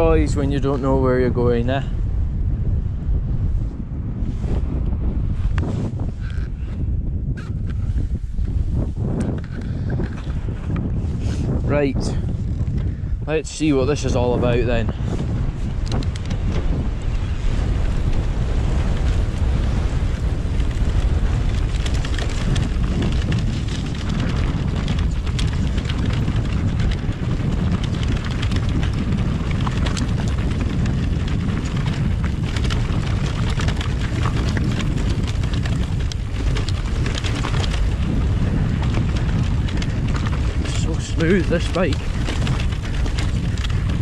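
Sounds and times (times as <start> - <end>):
mountain bike rumbling on trail: 0.0 - 44.0
wind buffeting microphone: 0.0 - 44.0
clicks and knocks of bike and stones: 7.3 - 44.0.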